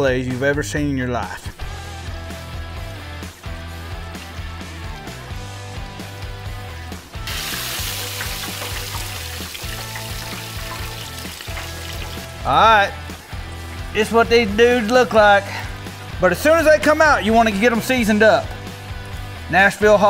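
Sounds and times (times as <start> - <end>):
background music: 0.0 - 20.0
fish deep-frying in oil: 7.2 - 12.4.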